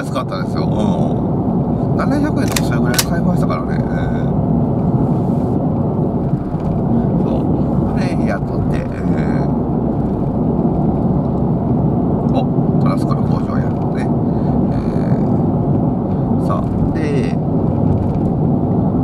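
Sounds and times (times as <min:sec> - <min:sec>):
car cabin road and engine rumble: 0:00.0 - 0:19.0.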